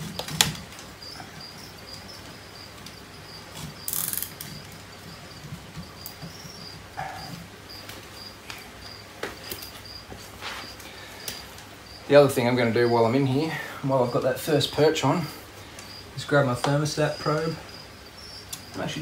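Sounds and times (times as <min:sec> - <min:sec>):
cricket chirping: 0:00.0 - 0:19.0
zip tie ratcheting clicks: 0:03.9 - 0:04.5.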